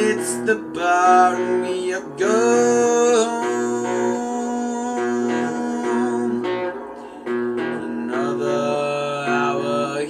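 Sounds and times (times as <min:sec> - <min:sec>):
guitar playing: 0:00.0 - 0:10.0
man singing: 0:00.0 - 0:10.0.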